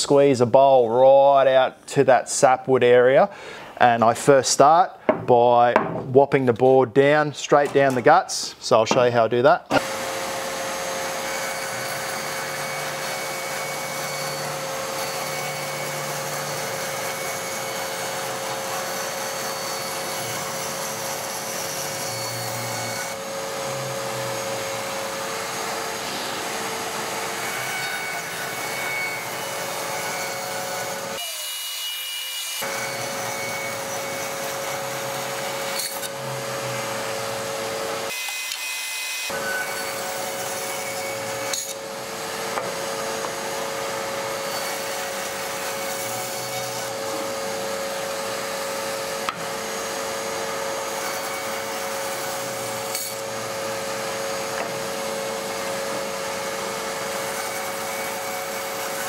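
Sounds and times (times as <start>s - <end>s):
bandsaw cutting wood: 9.7s - 59.0s.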